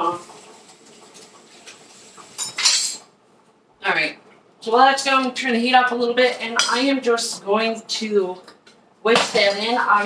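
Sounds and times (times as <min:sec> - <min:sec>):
dishes and cutlery clattering: 0:02.3 - 0:03.1.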